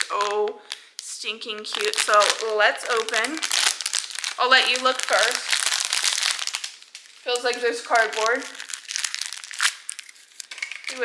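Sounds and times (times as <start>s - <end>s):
paper crinkling and tearing: 1.6s - 11.0s.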